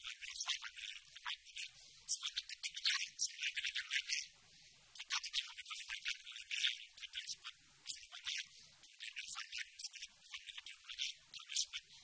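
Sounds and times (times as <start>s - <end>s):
thin hissy man's voice: 0.0s - 12.0s.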